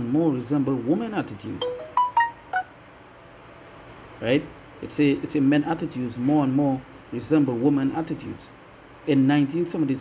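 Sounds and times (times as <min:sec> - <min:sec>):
faint room hiss: 0:00.0 - 0:10.0
descending electronic beeps: 0:01.6 - 0:02.7.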